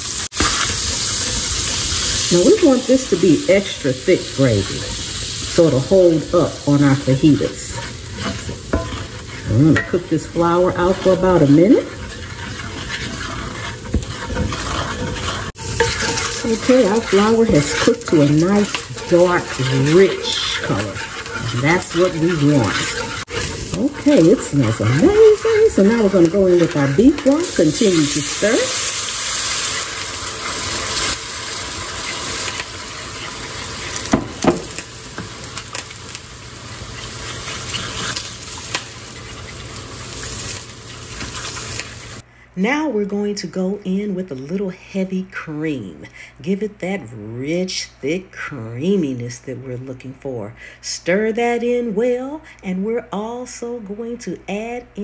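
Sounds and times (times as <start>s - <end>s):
roux sizzling: 0.0s - 42.3s
wooden spoon scraping skillet: 0.2s - 42.2s
wooden spoon knocking on pan: 13.9s - 14.7s, 34.0s - 34.8s.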